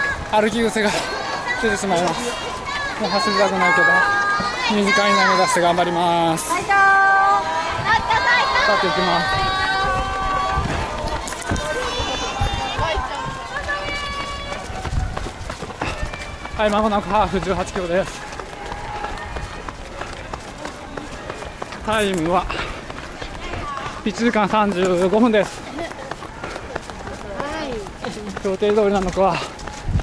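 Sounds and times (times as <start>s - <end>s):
footfalls on asphalt: 10.1s - 30.0s.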